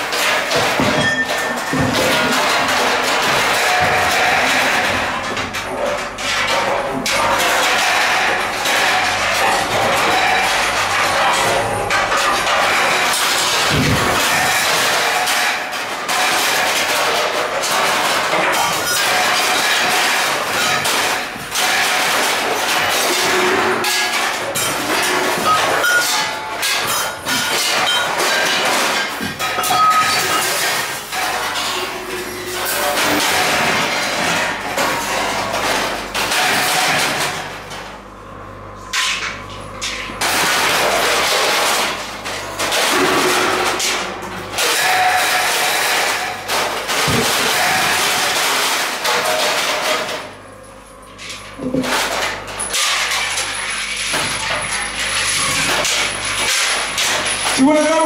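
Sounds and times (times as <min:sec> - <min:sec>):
metal objects struck and scraped: 0:00.0 - 0:37.8, 0:38.6 - 0:58.0.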